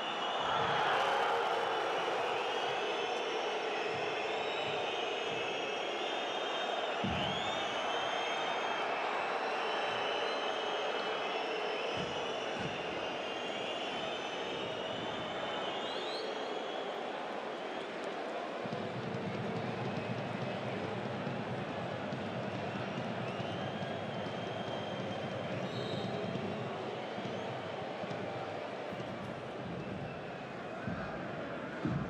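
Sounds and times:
crowd roaring: 0:00.0 - 0:19.0.

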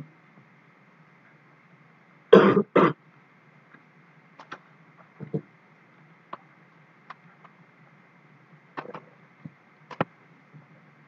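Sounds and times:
person coughing: 0:02.4 - 0:03.0.

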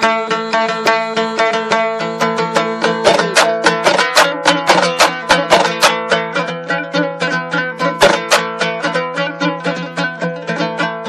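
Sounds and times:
plucked string instrument: 0:00.0 - 0:11.0.

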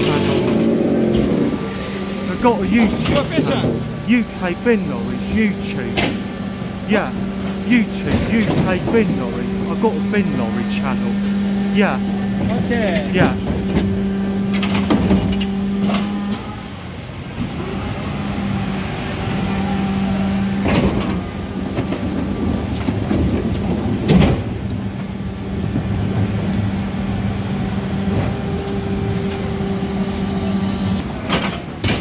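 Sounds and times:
refuse truck engine humming: 0:00.0 - 0:20.6
truck knocks and clanks: 0:20.6 - 0:25.1, 0:31.2 - 0:32.0.

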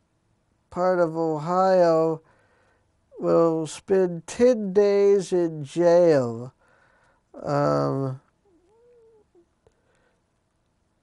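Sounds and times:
cat meowing: 0:08.5 - 0:09.4.

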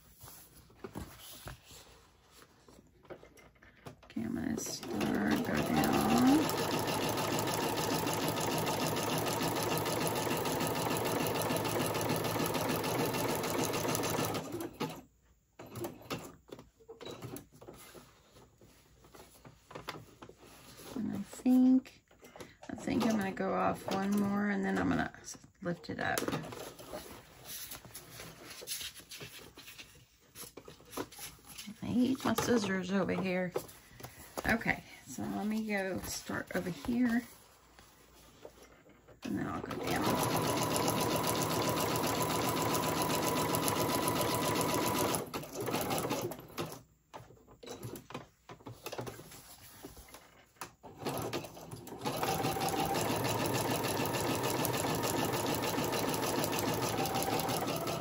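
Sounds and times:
sewing machine stitching: 0:04.4 - 0:15.0, 0:39.2 - 0:46.8, 0:50.8 - 0:58.0.

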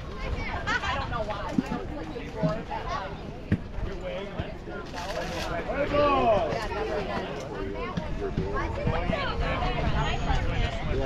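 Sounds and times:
spectators and players chattering: 0:00.0 - 0:11.0.

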